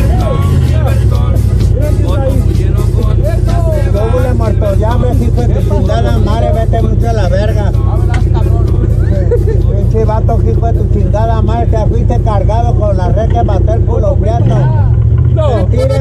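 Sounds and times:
engine low drone: 0.0 - 16.0
people's voices: 0.0 - 16.0.

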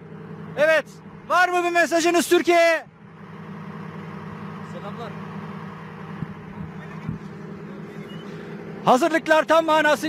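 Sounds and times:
armored vehicle engine idling: 0.0 - 10.0.

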